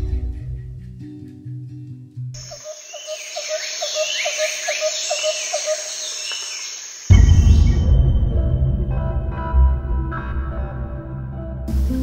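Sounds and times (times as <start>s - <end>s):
high bird chirping: 2.4s - 8.4s.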